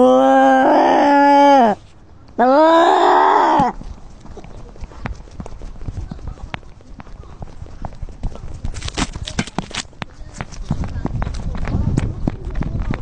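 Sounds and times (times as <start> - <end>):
quick taps and scuffs: 3.8 - 13.0.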